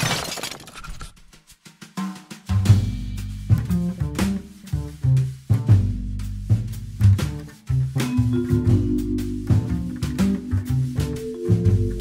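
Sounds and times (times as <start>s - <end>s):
glass shattering: 0.0s - 1.1s
music: 1.2s - 12.0s.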